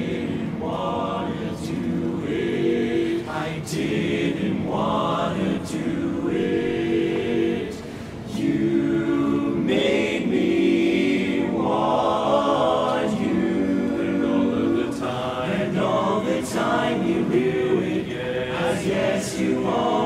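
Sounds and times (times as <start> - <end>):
men's chorus singing a cappella: 0.0 - 20.0.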